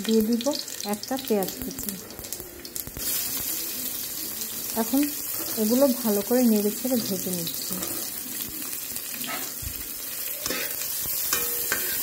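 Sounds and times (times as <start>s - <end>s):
onions sizzling in oil: 0.0s - 12.0s
metal spatula scraping pan: 10.4s - 12.0s.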